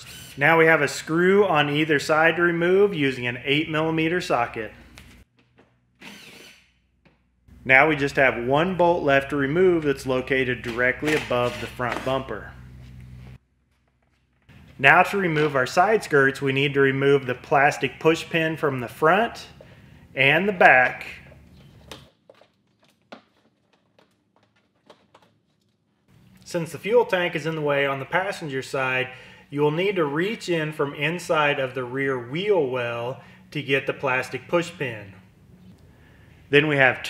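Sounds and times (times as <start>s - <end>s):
power drill running: 0.0s - 0.4s, 6.0s - 6.8s.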